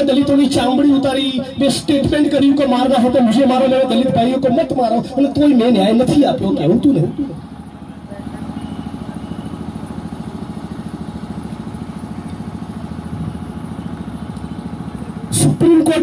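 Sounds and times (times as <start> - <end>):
engine idling: 0.0 - 16.0.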